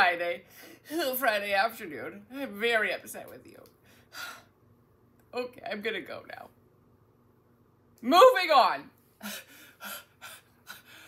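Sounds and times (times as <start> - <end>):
woman gasping breaths: 9.2 - 11.0.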